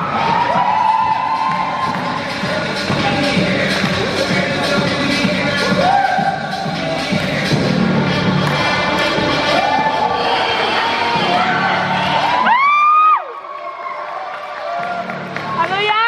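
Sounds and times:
loud dance music: 0:00.0 - 0:14.0, 0:14.6 - 0:16.0
people shouting and cheering: 0:00.0 - 0:16.0
long loud whoop: 0:12.2 - 0:14.0.

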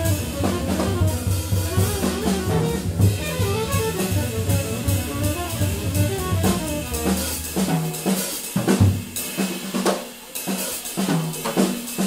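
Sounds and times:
upright bass line: 0:00.0 - 0:07.7
jazz drum kit: 0:00.0 - 0:12.0.

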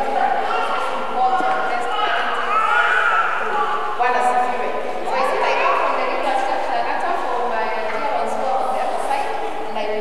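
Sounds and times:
woman speaking into microphone: 0:00.0 - 0:02.6, 0:03.9 - 0:10.0.

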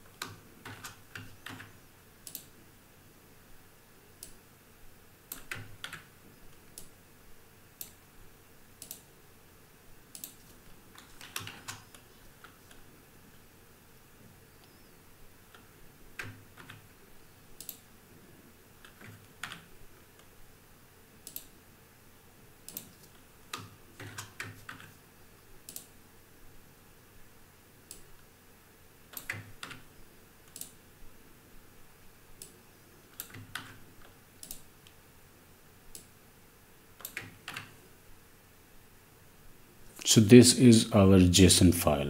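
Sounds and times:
computer keyboard keystrokes: 0:00.2 - 0:02.5, 0:05.3 - 0:06.1, 0:08.8 - 0:09.1, 0:10.1 - 0:12.8, 0:15.5 - 0:16.9, 0:17.6 - 0:17.8, 0:18.8 - 0:19.7, 0:21.2 - 0:21.5, 0:22.7 - 0:25.0, 0:25.7 - 0:25.9, 0:29.1 - 0:29.9, 0:33.2 - 0:33.8, 0:34.4 - 0:34.7, 0:37.0 - 0:37.7.

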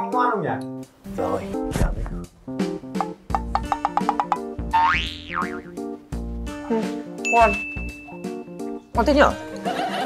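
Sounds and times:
bouncy background music: 0:00.0 - 0:10.0
cartoon boing sound effect: 0:04.7 - 0:05.7
thin steady high tone: 0:07.2 - 0:08.6.

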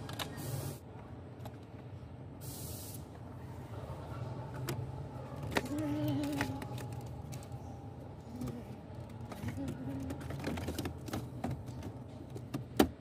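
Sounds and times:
short bursts of hiss: 0:02.4 - 0:03.1.

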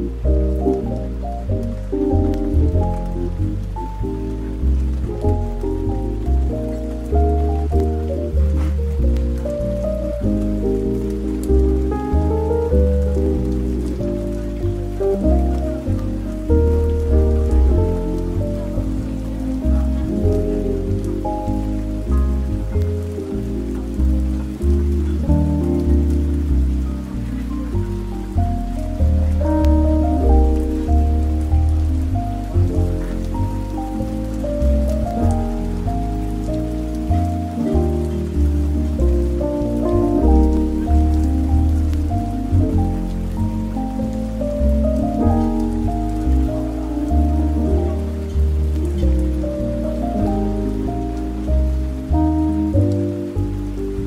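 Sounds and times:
faint hiss with clicks: 0:00.0 - 0:54.0
soft jazz music: 0:00.0 - 0:54.0.

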